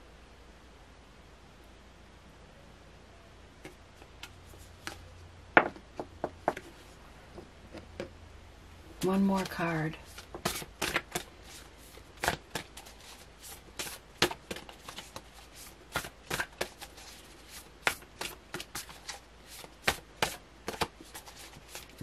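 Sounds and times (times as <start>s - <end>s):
cards being shuffled: 3.6s - 5.1s, 9.0s - 22.0s.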